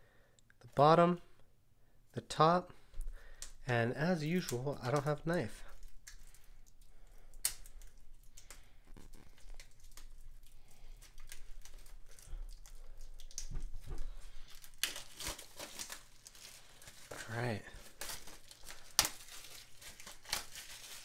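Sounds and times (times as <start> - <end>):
plastic wrap crackling and tearing: 4.0 - 21.0.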